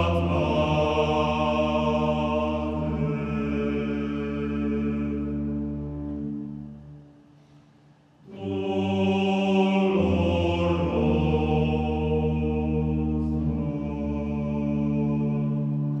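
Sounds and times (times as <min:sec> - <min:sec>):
slow sung chant: 0:00.0 - 0:07.1, 0:08.1 - 0:16.0.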